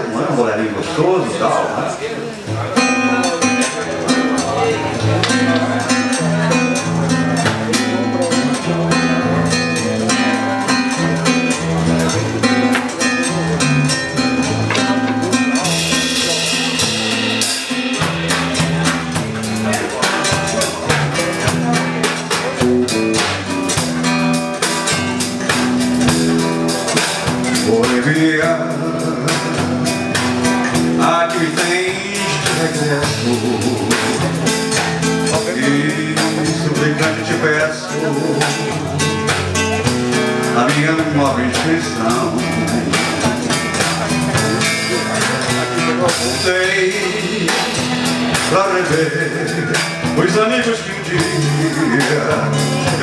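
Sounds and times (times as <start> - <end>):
acoustic guitar: 0.0 - 53.0
drums: 0.0 - 53.0
walking bass line: 2.5 - 53.0.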